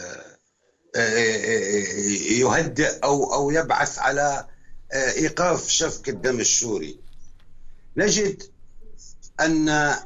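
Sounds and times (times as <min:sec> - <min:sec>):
man speaking: 0:00.0 - 0:00.2, 0:01.0 - 0:07.0, 0:08.0 - 0:08.4, 0:09.2 - 0:10.0
man's long hesitation sound: 0:01.0 - 0:07.0, 0:08.0 - 0:10.0.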